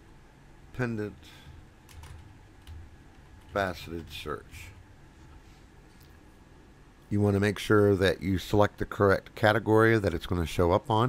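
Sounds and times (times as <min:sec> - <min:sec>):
keyboard typing: 0:01.5 - 0:04.8.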